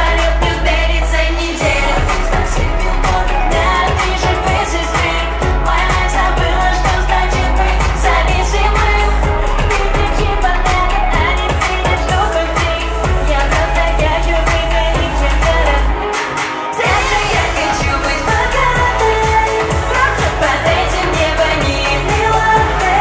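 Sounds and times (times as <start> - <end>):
backing track with steady beat: 0.0 - 23.0
woman singing into a microphone: 0.0 - 23.0.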